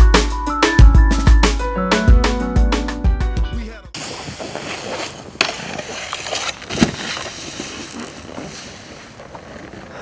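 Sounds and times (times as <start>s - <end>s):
snowboard landing on snow: 4.0s - 9.2s.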